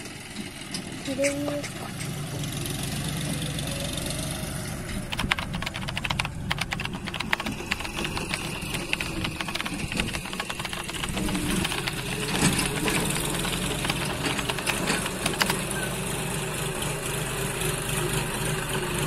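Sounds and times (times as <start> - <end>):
diesel engine running: 0.0 - 19.0
rapid clicks and crackles: 4.8 - 15.9.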